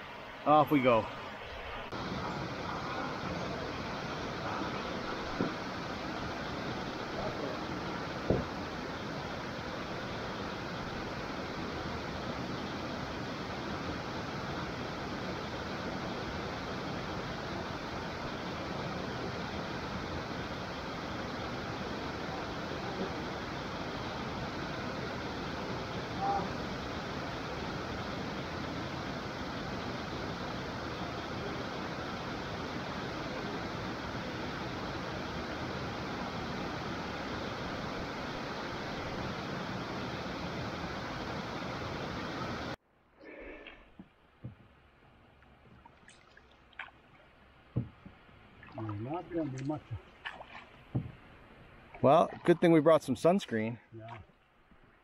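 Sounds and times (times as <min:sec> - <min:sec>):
water pouring over a dam: 0:45.4 - 0:47.8.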